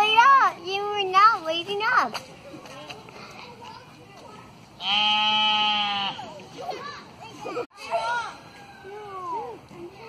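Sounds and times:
sheep bleating: 4.8 - 6.3.

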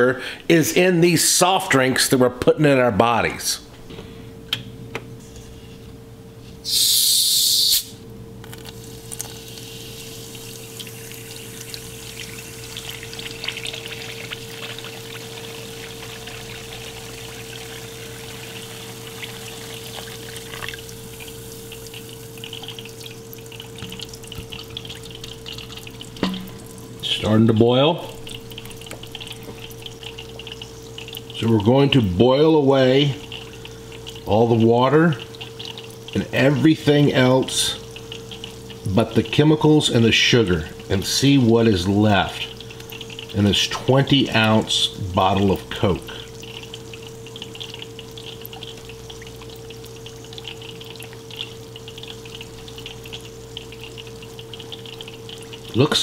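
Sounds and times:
faint steady hum: 0.0 - 56.0
liquid boiling in a saucepan: 6.5 - 56.0
bubbles popping and crackling: 8.5 - 56.0.

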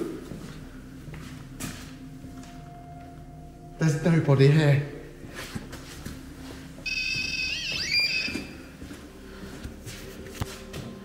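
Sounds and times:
electronic alarm tone: 6.8 - 8.8.

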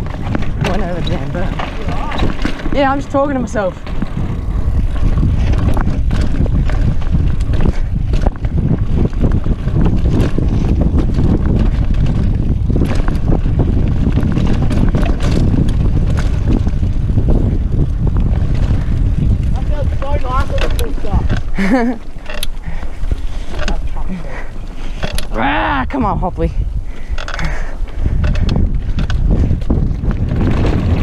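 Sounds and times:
bike rattling and knocking: 0.0 - 31.0
tyres rumbling on dirt: 0.0 - 31.0
wind buffeting microphone: 0.0 - 31.0.

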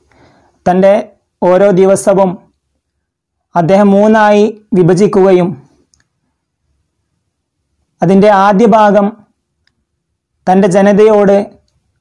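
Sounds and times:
man speaking: 0.6 - 2.5, 3.5 - 5.7, 8.0 - 9.3, 10.4 - 11.6.

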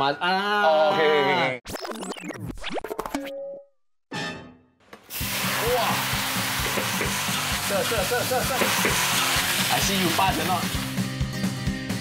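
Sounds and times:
vegetables sizzling in a wok: 5.0 - 11.1.

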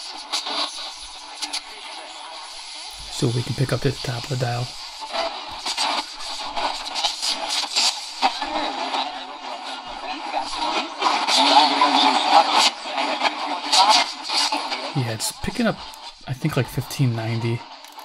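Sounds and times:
radio static and hiss: 0.0 - 18.0
distant radio voice: 1.3 - 4.8, 14.9 - 17.7.

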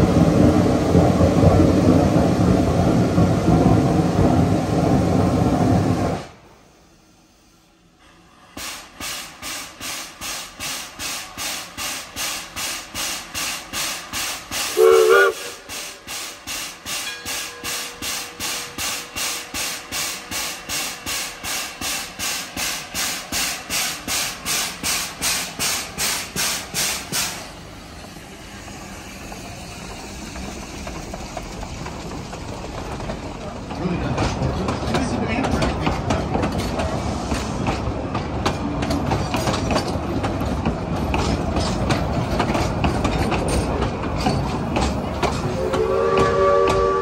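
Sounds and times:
steam locomotive exhaust chuffing: 8.2 - 47.0
steam whistle toot: 14.7 - 15.8, 45.5 - 47.0.

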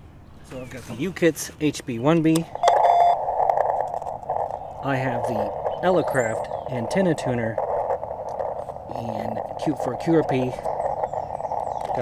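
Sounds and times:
radio receiver hiss: 2.4 - 12.0
short beep: 2.6 - 3.2.

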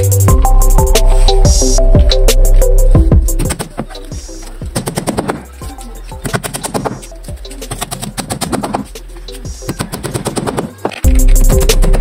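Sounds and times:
background music: 0.0 - 12.0
metal hand tool chipping wood: 6.2 - 12.0.

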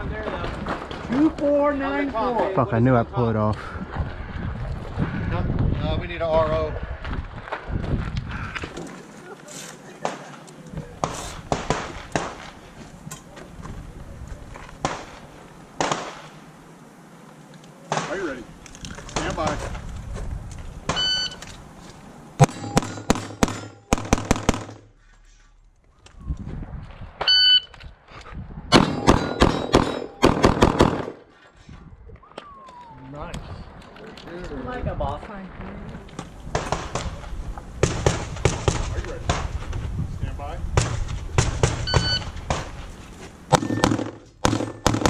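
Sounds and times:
wind rumble on microphone: 3.0 - 8.8, 12.8 - 14.8, 18.5 - 20.9, 26.0 - 28.8, 31.6 - 43.2
rapid handgun shots: 11.0 - 12.5, 15.8 - 16.3, 22.4 - 24.9, 28.7 - 31.2, 43.5 - 45.0
electronic shot timer beep: 41.9 - 42.3.

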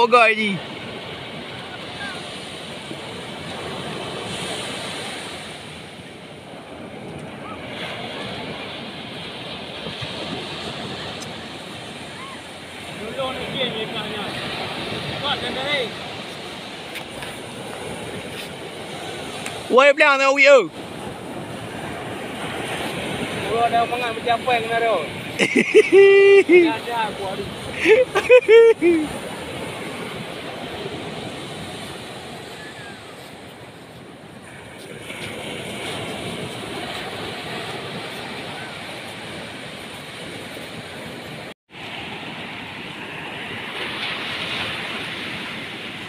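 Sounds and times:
surf breaking on beach: 0.0 - 46.0
people calling out: 25.4 - 26.8, 27.8 - 29.2.

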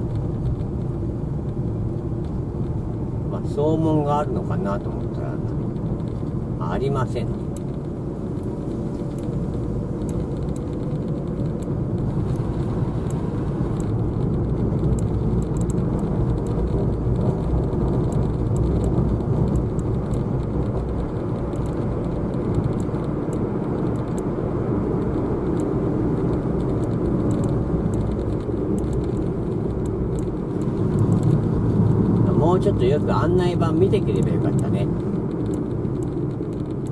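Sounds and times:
car engine and road noise: 0.0 - 36.9.

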